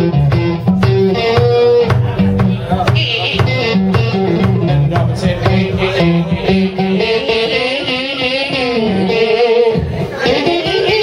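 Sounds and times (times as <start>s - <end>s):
electric guitar with bending notes: 0.0s - 11.0s.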